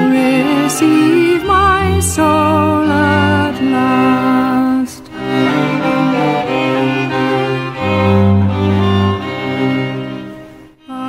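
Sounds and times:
bowed strings playing a slow hymn: 0:00.0 - 0:11.0.

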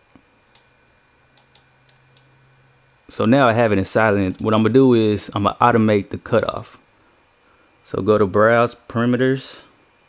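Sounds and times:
low steady hum: 0:00.0 - 0:10.0
computer mouse and key clicks: 0:00.1 - 0:00.7, 0:01.4 - 0:02.3, 0:04.2 - 0:04.7, 0:06.4 - 0:06.7.

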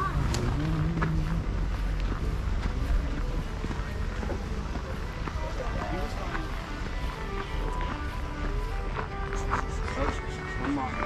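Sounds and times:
indistinct voices: 0:00.0 - 0:11.0
music: 0:00.0 - 0:11.0.

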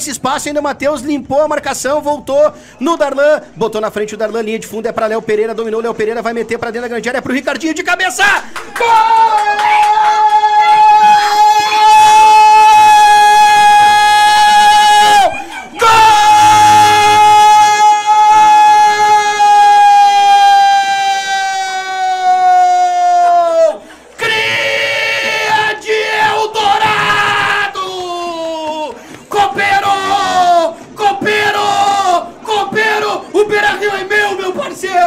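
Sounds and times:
man shouting excitedly: 0:08.0 - 0:35.0
commentator's long goal shout: 0:08.8 - 0:35.0.

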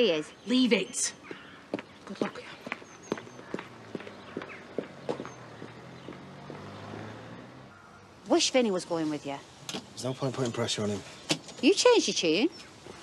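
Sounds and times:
faint bird chirps: 0:00.0 - 0:06.9
footsteps on hard ground: 0:01.2 - 0:06.7.

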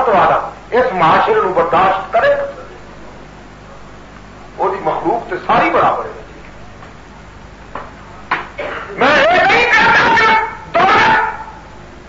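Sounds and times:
man preaching with wavering pitch: 0:00.0 - 0:02.8, 0:09.0 - 0:11.6.

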